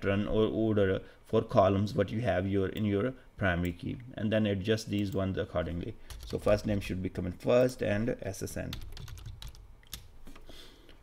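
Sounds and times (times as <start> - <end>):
quiet keyboard keystrokes: 8.7 - 10.1.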